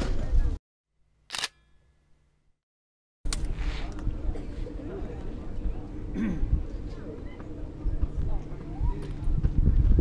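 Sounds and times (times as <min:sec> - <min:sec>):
camera shutter click: 0:01.3 - 0:01.6.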